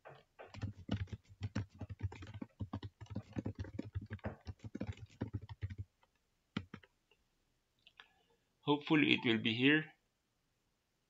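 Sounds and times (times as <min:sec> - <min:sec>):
fast typing on keyboard: 0:00.4 - 0:06.9.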